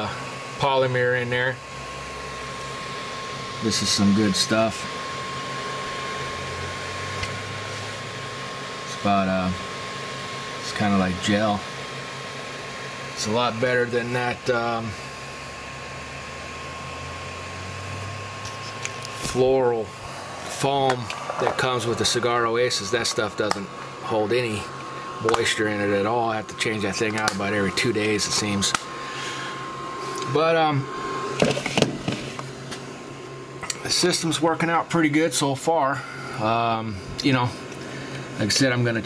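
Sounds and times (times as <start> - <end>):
low steady hum: 0.0 - 39.0
small electric fans whirring: 0.0 - 39.0.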